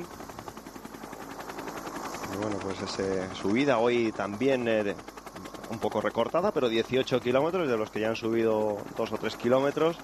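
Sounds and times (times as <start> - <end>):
helicopter rotor chopping: 0.0 - 10.0.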